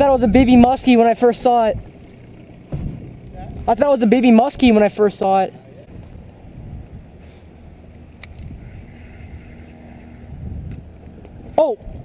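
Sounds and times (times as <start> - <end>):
wind rumble on microphone: 0.0 - 0.9, 5.9 - 12.0.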